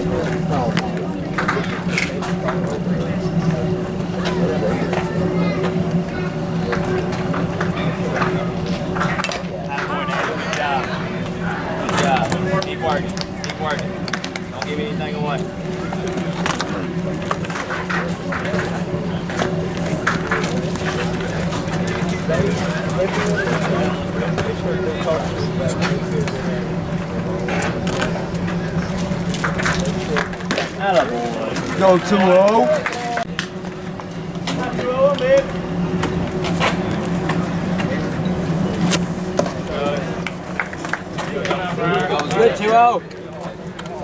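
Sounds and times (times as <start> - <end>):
distant voices: 0.0 - 44.0
steady low hum: 0.0 - 44.0.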